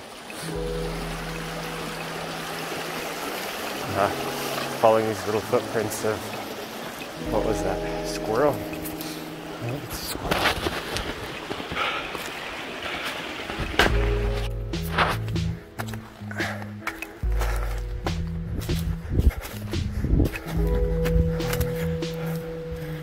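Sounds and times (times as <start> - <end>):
background music with low notes: 0.4 - 11.4, 13.5 - 23.0
footsteps crunching in snow: 10.0 - 23.0.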